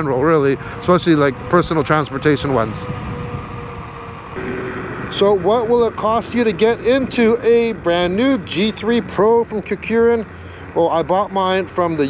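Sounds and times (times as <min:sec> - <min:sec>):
electric scooter motor whine: 0:00.0 - 0:06.8
road and wind noise: 0:00.0 - 0:12.0.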